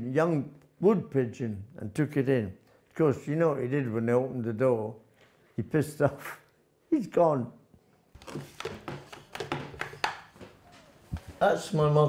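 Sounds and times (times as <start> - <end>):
picture frames knocking on counter: 8.2 - 10.6.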